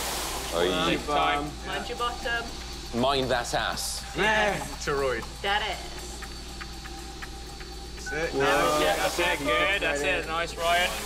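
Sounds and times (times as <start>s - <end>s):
steady low hum: 0.1s - 11.0s
quick countdown ticks: 1.2s - 11.0s.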